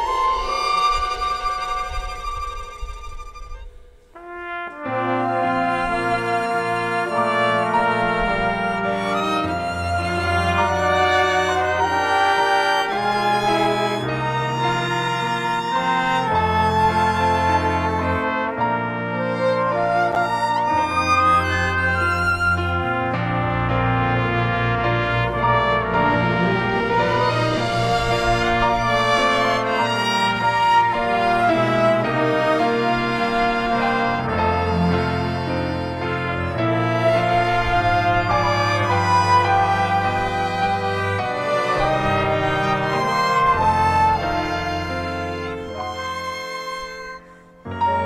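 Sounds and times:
orchestra playing chords: 0.0s - 48.0s.

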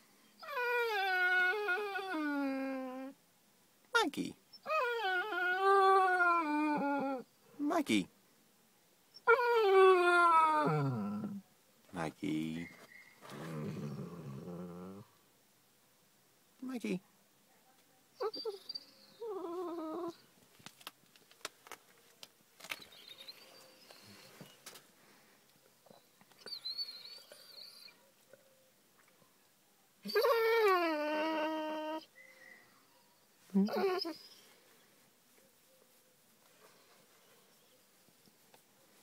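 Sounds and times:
dog whining: 0.4s - 3.2s, 4.5s - 7.2s, 9.1s - 11.4s, 18.2s - 20.3s, 25.9s - 28.0s, 30.0s - 32.2s, 32.9s - 34.6s.

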